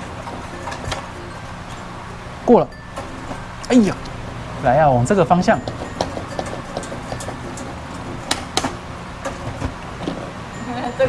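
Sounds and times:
faint machine music: 0:00.0 - 0:11.0
machine low hum: 0:00.0 - 0:11.0.

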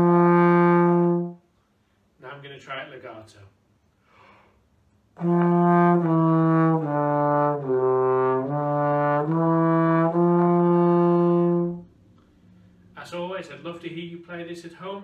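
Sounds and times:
trombone legato phrase: 0:00.0 - 0:01.4, 0:05.2 - 0:11.9.

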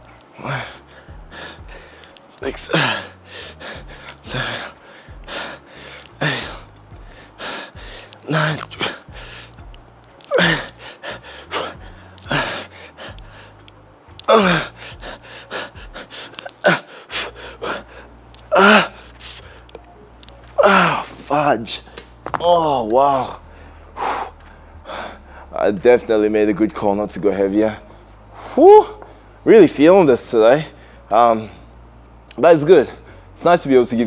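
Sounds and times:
faint bass music: 0:00.0 - 0:34.0
man straining exhales and grunts: 0:08.2 - 0:09.1, 0:10.3 - 0:12.8, 0:14.2 - 0:15.2, 0:18.5 - 0:19.1, 0:20.6 - 0:21.1.

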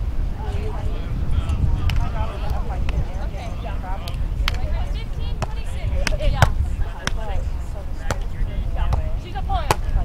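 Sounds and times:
hands slapping volleyball: 0:04.0 - 0:04.7, 0:05.4 - 0:07.4, 0:08.0 - 0:08.3, 0:09.7 - 0:10.0.

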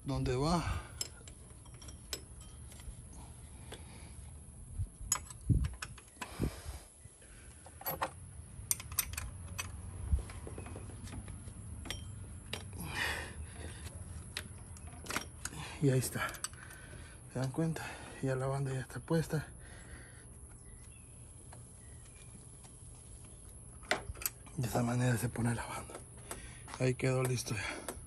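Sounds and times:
metal tools clinking: 0:00.4 - 0:03.4, 0:05.0 - 0:06.2, 0:07.8 - 0:11.0, 0:11.6 - 0:13.1, 0:14.2 - 0:16.9.

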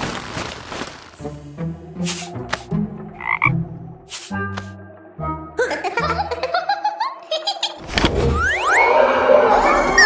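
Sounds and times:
cartoon frog croak: 0:03.2 - 0:03.6.

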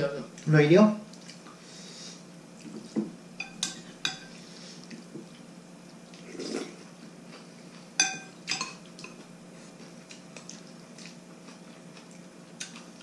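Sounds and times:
soft eating sound: 0:00.0 - 0:13.0
spoons and chopsticks clinking bowls: 0:03.4 - 0:04.3, 0:08.0 - 0:09.2.

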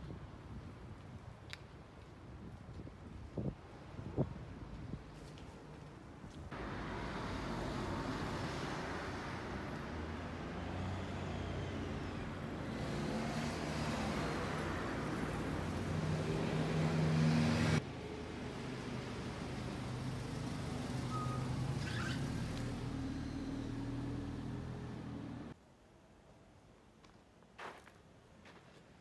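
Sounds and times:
vehicles passing: 0:06.5 - 0:25.6.

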